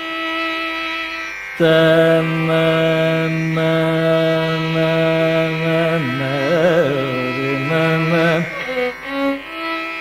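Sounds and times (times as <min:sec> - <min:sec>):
man singing long note: 0:01.6 - 0:08.9.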